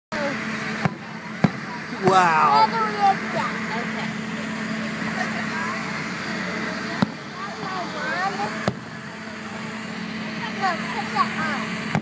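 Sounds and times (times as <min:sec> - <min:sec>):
murmur of crowd voices: 0:00.1 - 0:12.0
firework bangs: 0:00.4 - 0:02.2, 0:04.1 - 0:10.2.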